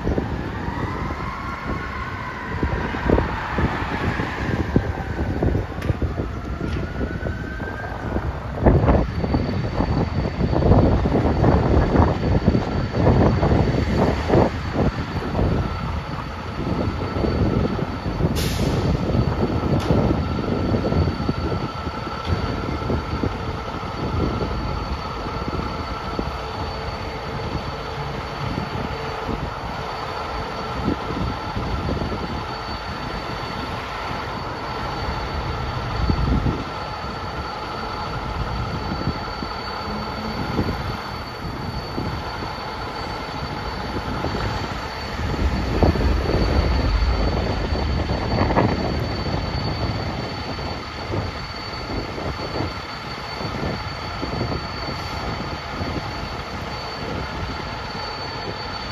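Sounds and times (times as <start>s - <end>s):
diesel engine rumbling: 0.0s - 58.6s
constant high whine: 0.0s - 58.9s.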